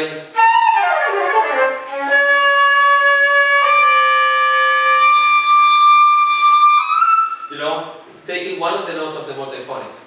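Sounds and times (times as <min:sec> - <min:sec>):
flute multiphonic: 0:00.3 - 0:07.8.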